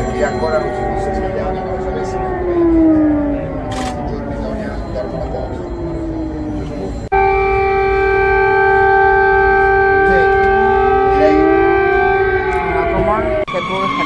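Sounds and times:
sirens wailing: 0:00.0 - 0:14.0.

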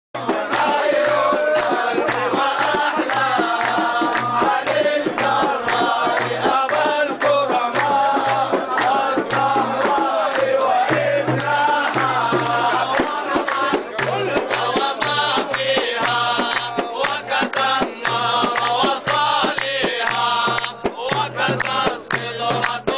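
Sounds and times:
group of voices chanting: 0:00.2 - 0:22.9
percussion beats: 0:00.2 - 0:22.9.

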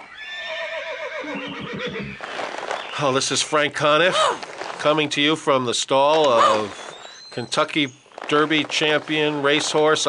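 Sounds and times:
horse whinnying: 0:00.0 - 0:02.3.

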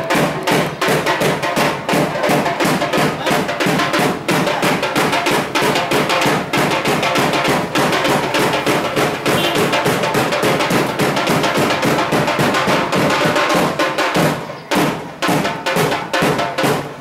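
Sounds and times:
fast dense drumming: 0:00.0 - 0:17.0.

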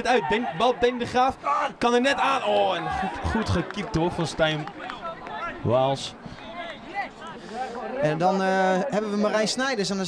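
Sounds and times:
commentary: 0:00.0 - 0:10.0
faint men's voices talking: 0:00.0 - 0:10.0.

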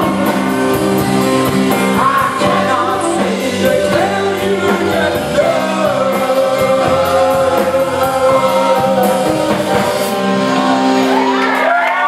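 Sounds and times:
live band playing: 0:00.0 - 0:12.0
audience shouting and whooping: 0:10.3 - 0:12.0.

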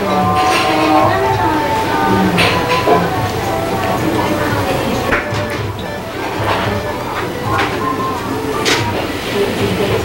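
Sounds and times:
faint music: 0:00.0 - 0:10.0
restaurant background noise: 0:00.0 - 0:10.0.

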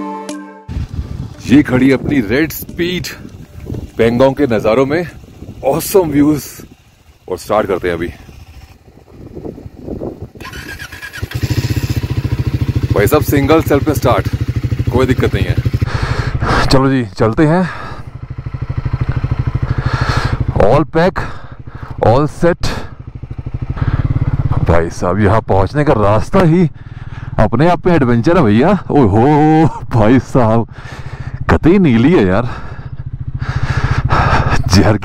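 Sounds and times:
starter whine: 0:00.7 - 0:25.0
motorcycle engine idling: 0:00.7 - 0:35.0.

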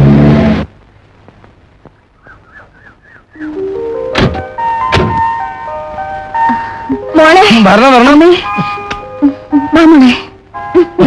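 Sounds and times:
film score held notes: 0:00.0 - 0:11.0
sharp knocks: 0:04.2 - 0:05.3.

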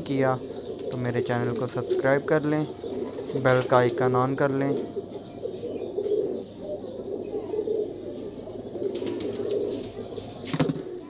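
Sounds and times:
pigeons cooing: 0:00.0 - 0:11.0.

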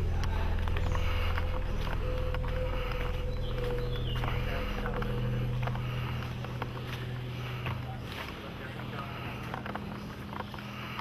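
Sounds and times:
low machine hum: 0:00.0 - 0:11.0.

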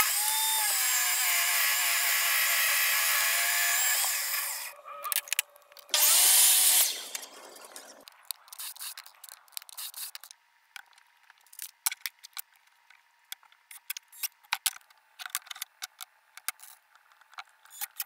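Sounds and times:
miter saw cutting wood: 0:00.0 - 0:04.8, 0:05.9 - 0:07.3
table saw running: 0:00.0 - 0:04.8, 0:05.9 - 0:07.3.

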